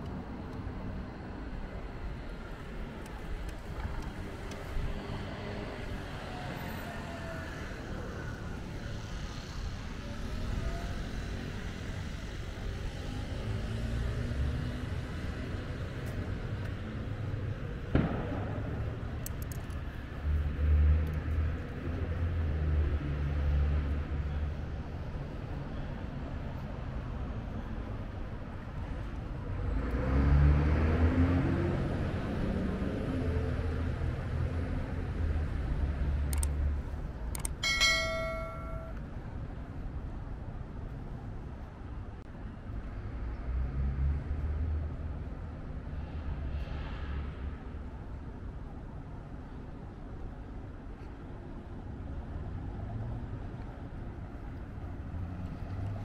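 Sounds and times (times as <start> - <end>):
road traffic rumble: 0.0 - 56.0
vehicle passing by: 29.4 - 36.8.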